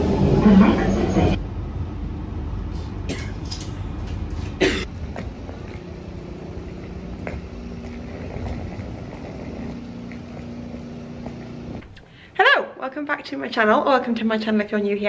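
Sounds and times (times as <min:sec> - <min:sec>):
city street background: 0:00.0 - 0:07.8
train carriage rumbling: 0:00.0 - 0:12.0.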